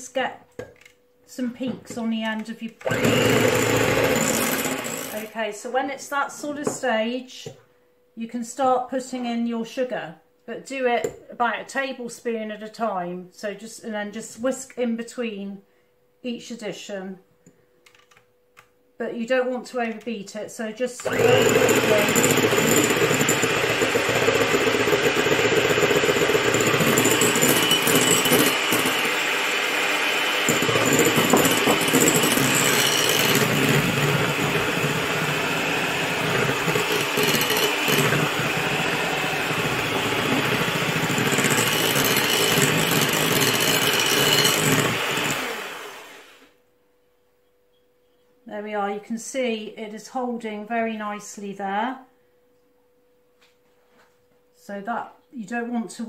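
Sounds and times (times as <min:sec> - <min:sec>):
electric hand mixer running: 0:02.8 - 0:05.3, 0:21.0 - 0:46.4.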